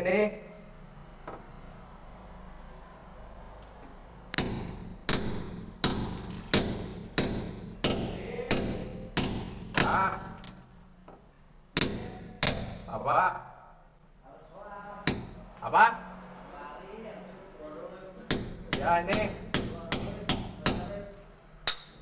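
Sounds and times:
hammer striking steel chisel: 4.4s - 10.4s, 11.8s - 12.9s, 18.3s - 21.0s, 21.6s - 22.0s.

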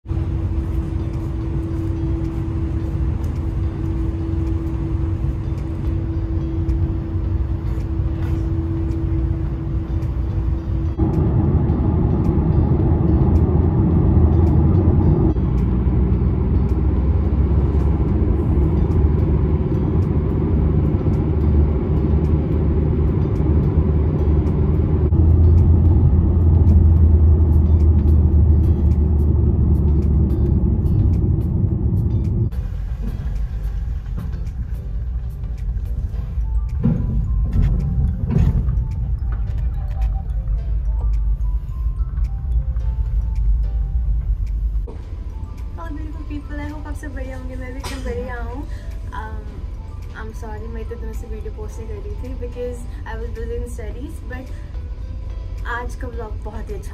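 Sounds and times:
engine rumble: 0.0s - 56.9s
road noise inside a car: 0.0s - 56.9s
steady hum: 0.1s - 56.9s.

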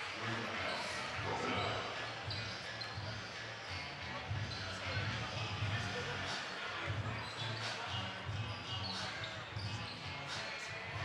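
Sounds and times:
background voices in a hall: 0.0s - 11.0s.

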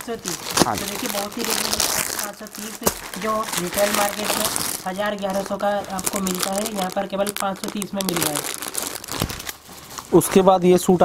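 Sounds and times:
plastic wrappers crinkling: 0.0s - 10.5s.

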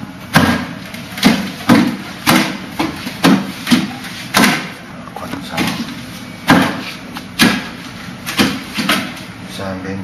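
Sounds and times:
hands striking wooden dummy: 0.3s - 4.8s, 6.5s - 7.7s, 8.3s - 9.2s.

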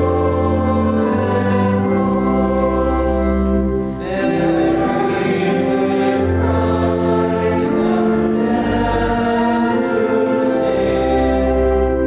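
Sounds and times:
congregation singing a hymn: 0.0s - 12.0s
low accompanying tones: 0.0s - 12.0s.

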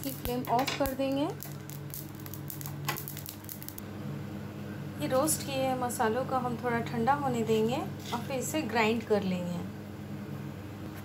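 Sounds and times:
seeds crackling in a pan: 0.0s - 3.8s
steady low hum: 0.0s - 11.0s.

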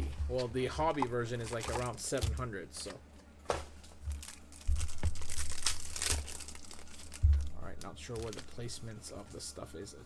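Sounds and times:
foil wrapper crinkling and tearing: 0.9s - 2.9s, 4.0s - 9.3s.

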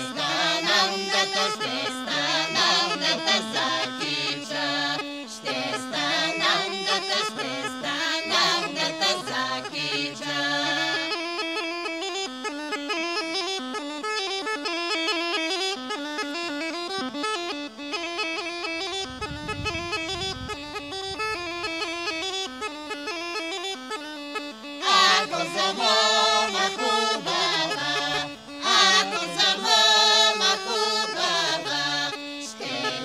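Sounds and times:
group of folk singers: 0.0s - 11.3s, 24.8s - 33.0s
bagpipe melody over drone: 0.0s - 33.0s.

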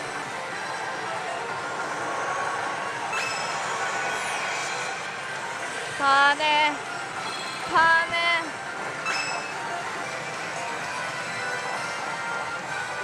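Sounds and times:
slot machines din: 6.2s - 13.0s.

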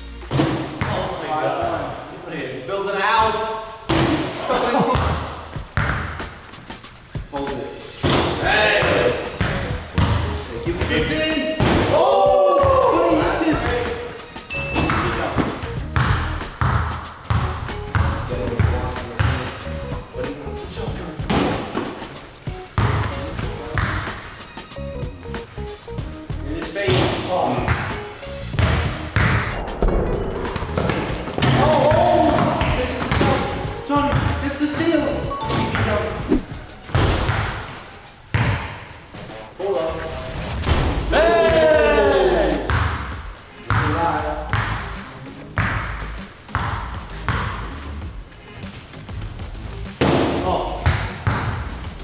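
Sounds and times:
background music: 0.0s - 52.0s
basketball bouncing: 4.9s - 6.6s, 9.4s - 10.4s, 14.8s - 19.4s, 21.2s - 24.2s, 27.0s - 33.4s, 34.0s - 34.4s, 38.3s - 38.8s, 42.7s - 45.0s, 46.5s - 47.7s, 50.0s - 51.7s.

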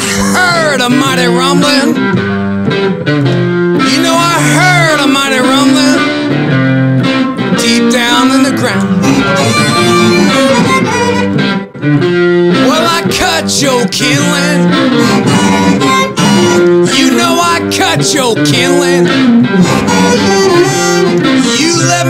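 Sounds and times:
amplified blues harmonica: 0.0s - 22.0s
electric guitar: 0.0s - 22.0s.

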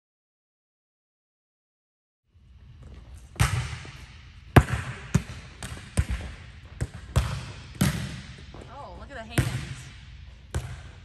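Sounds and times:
volleyballs smacking gym floor: 3.3s - 11.0s.

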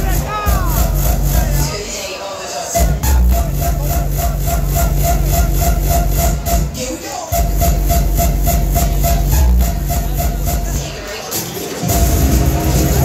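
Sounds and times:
bass-heavy kick beat: 0.0s - 1.8s, 2.8s - 11.0s, 11.8s - 13.0s
electronic dance music: 0.0s - 13.0s.

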